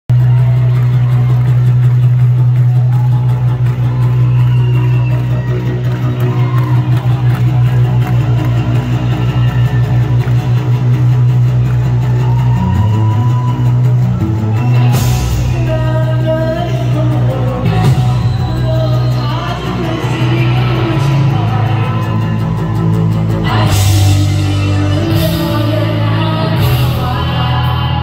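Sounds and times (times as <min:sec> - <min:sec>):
guitar: 0:00.1 - 0:28.0
live rock band music: 0:14.0 - 0:28.0.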